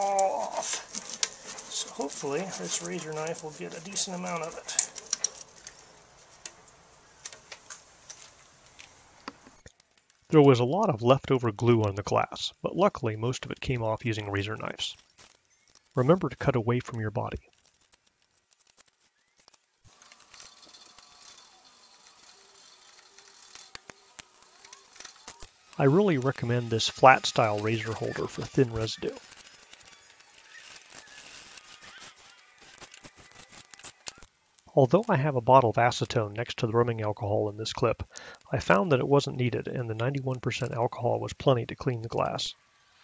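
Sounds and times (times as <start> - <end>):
small ticks: 2.6 - 10.3, 14.9 - 16.1, 17.4 - 34.7
razor blade scraping glass: 18.7 - 34.3.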